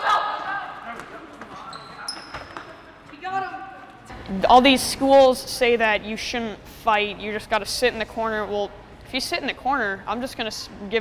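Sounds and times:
children shouting and laughing: 0.0 - 0.8.

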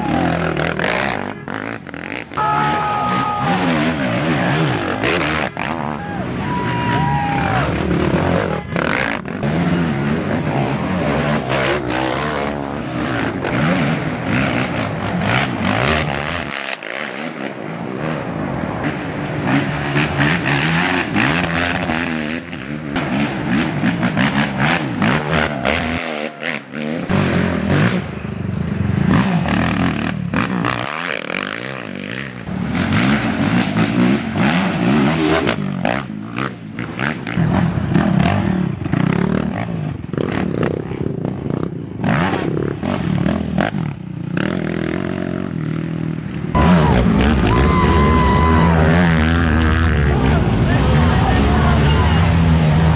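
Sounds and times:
atv engines revving: 0.0 - 52.9.

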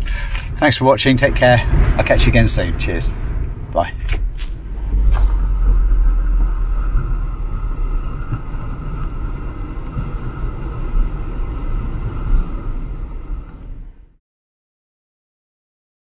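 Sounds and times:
wind buffeting microphone: 0.0 - 14.1.

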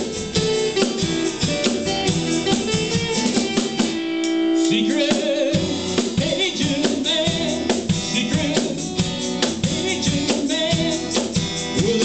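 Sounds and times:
rock band playing: 0.0 - 12.0
steady drum beat: 0.0 - 12.0.

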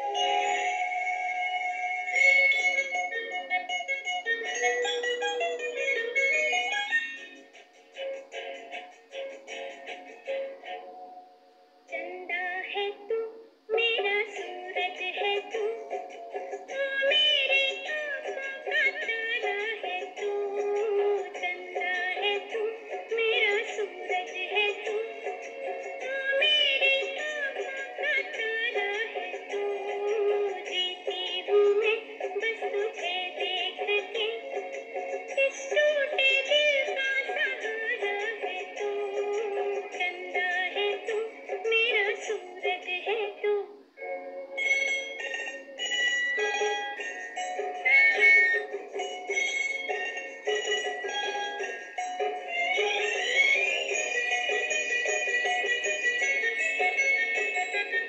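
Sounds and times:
pop song with singing: 35.4 - 43.6.

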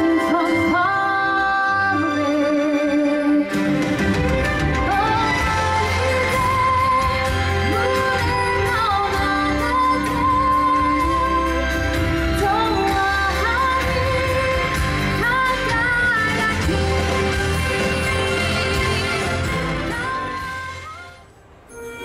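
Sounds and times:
woman singing a slow song: 0.0 - 3.6, 4.9 - 21.2
backing music: 0.0 - 22.0.

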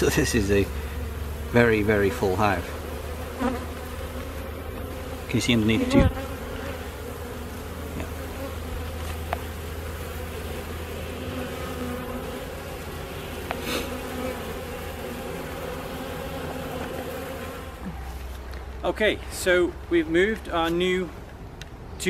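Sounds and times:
honeybees humming: 0.0 - 18.4.

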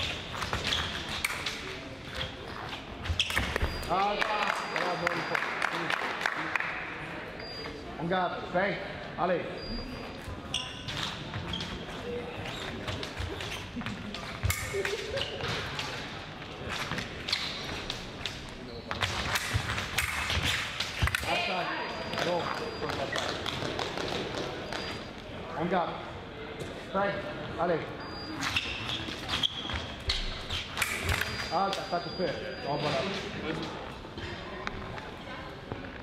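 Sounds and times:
fencing blades clicking: 19.2 - 21.3, 30.5 - 31.5.

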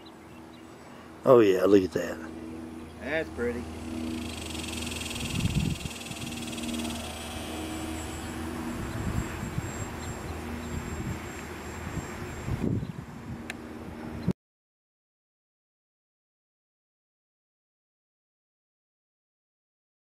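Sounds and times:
model plane motor whine: 0.0 - 14.3
wind buffeting microphone: 4.2 - 14.3.

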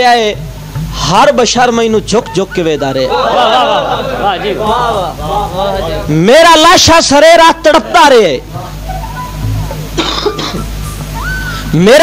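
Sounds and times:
steady low hum: 0.3 - 11.8
person coughing: 10.0 - 10.7.

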